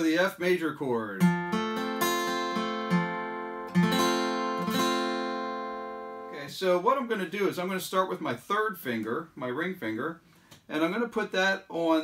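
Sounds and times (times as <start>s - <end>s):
acoustic guitar strums: 1.2s - 6.3s.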